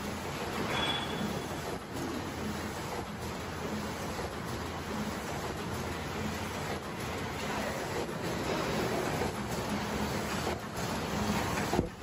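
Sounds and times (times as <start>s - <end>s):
machine running with pulse: 0.0s - 12.0s.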